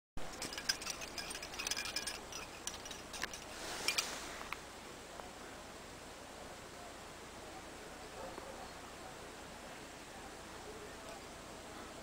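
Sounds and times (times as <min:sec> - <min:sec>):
metal climbing gear clinking: 0:00.2 - 0:04.2.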